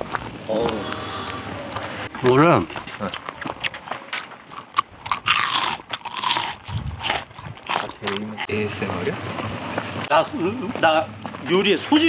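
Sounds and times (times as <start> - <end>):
crunchy food chewing: 2.8 - 8.5.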